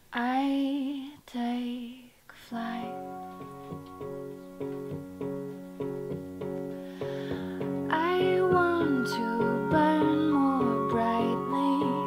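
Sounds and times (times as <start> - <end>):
woman singing: 0.1 - 3.2, 7.9 - 12.0
keyboard chords pulsing: 2.9 - 12.0.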